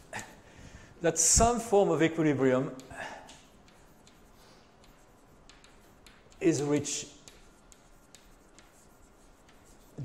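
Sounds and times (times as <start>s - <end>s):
chalk tapping and scraping: 1.2s - 10.0s.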